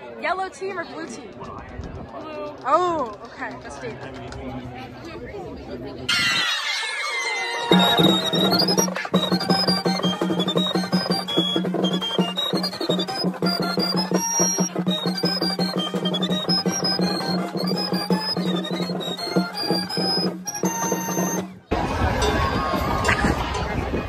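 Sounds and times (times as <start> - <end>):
piccolo melody: 7.4 - 23.2.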